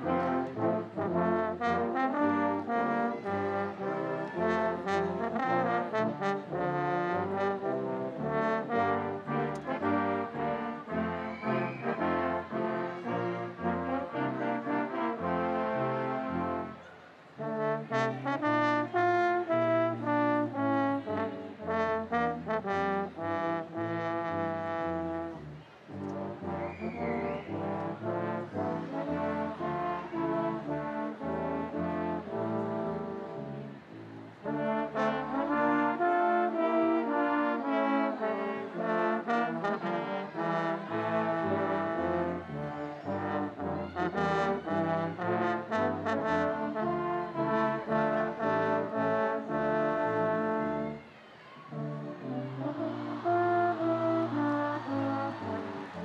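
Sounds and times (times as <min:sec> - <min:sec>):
brass ensemble playing: 0:00.0 - 0:56.0.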